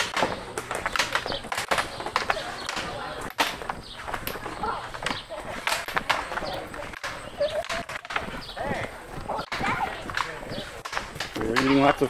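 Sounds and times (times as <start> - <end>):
sharp clicks and knocks: 0.0 - 8.4
distant people talking: 0.0 - 12.0.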